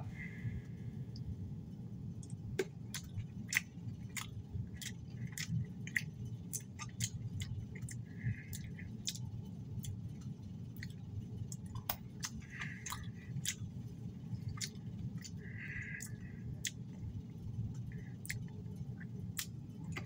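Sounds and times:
low steady hum: 0.0 - 20.0
person chewing candy: 2.2 - 20.0.

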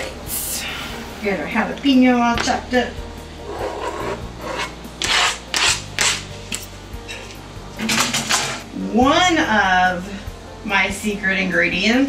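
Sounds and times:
knife scraping on cutting board: 3.4 - 7.3.

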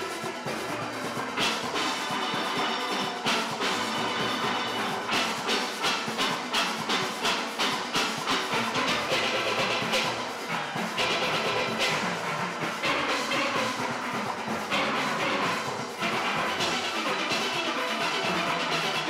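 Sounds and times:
steel band playing: 0.0 - 19.0.

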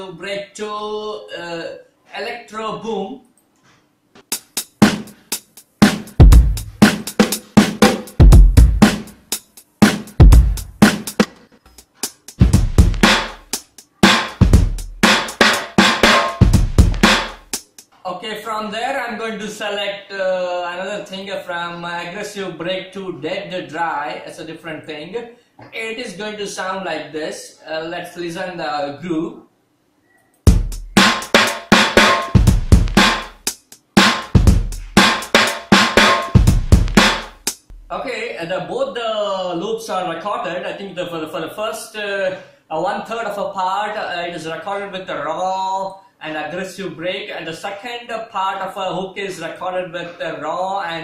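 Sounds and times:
hi-hats: 4.2 - 18.0, 30.5 - 38.0
kick and snare drum hits: 4.4 - 5.1, 5.8 - 9.1, 9.8 - 11.3, 12.4 - 17.5, 30.5 - 37.9.

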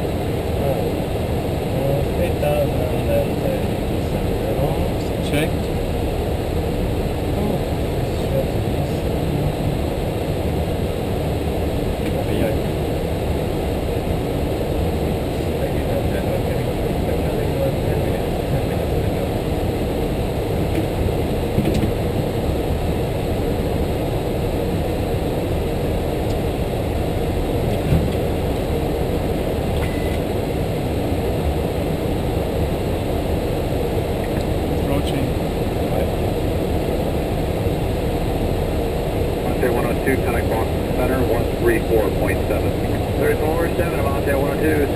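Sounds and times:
cockpit airflow and jet engine: 0.0 - 44.9.

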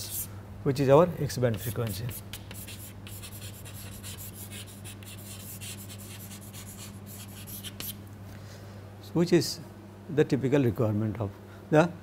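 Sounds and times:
chalk scratching on blackboard: 0.0 - 0.3, 1.5 - 8.0
low electrical hum: 0.0 - 12.0.

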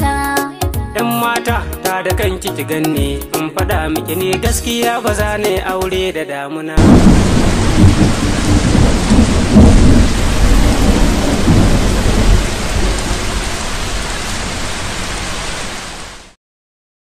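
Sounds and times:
rolling thunder: 6.8 - 15.2
heavy rain: 6.8 - 16.4.

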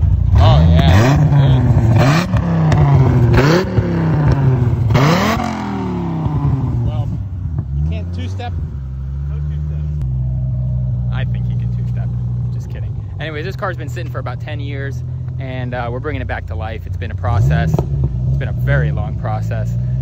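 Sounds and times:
car engine revving and idling: 0.0 - 20.0.

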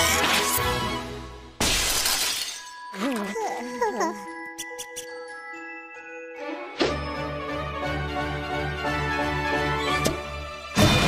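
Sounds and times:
ice cracking and shattering: 1.6 - 3.0.

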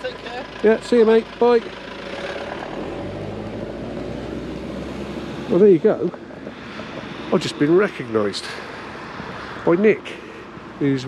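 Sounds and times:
car engine humming: 0.0 - 11.0.

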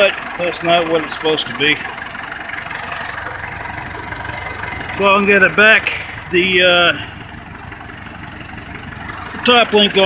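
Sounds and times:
tractor engine idling: 0.0 - 10.0.

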